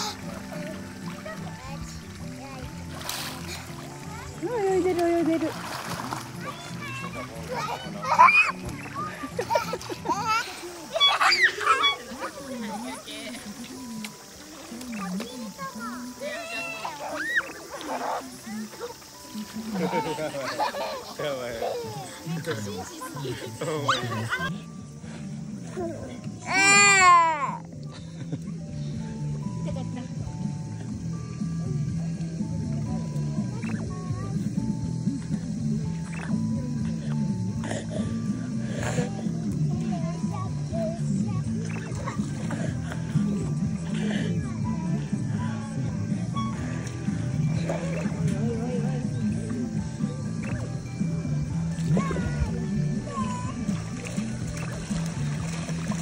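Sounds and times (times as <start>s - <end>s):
young children's voices: 0.0s - 2.9s, 3.5s - 4.5s, 6.4s - 13.2s, 14.6s - 19.1s, 33.4s - 34.8s, 39.0s - 42.7s, 51.8s - 53.6s
background music: 0.0s - 56.0s
children squealing: 7.5s - 12.5s, 16.2s - 18.5s.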